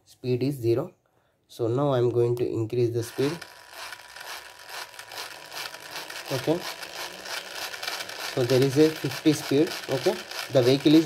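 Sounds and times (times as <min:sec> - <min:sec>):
small gear motor whirring: 0:03.0 - 0:11.0.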